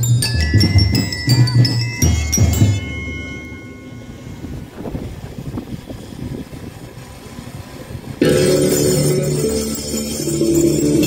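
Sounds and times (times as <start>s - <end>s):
wind buffeting microphone: 4.0s - 8.5s.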